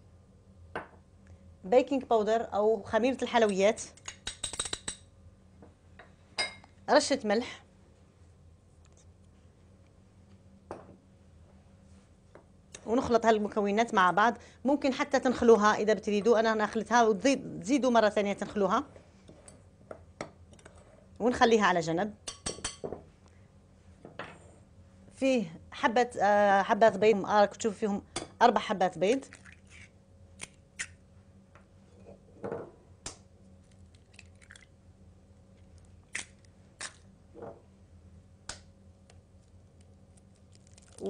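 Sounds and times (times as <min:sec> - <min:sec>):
eggshells cracking: 0:33.6 - 0:34.7, 0:35.6 - 0:37.1, 0:39.5 - 0:41.0.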